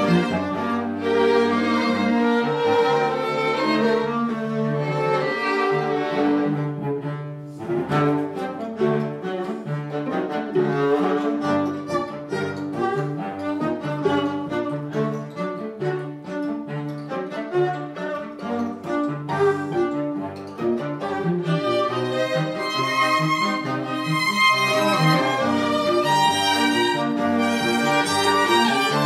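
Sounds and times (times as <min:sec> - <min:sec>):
string ensemble playing a tango: 0:00.0 - 0:29.0.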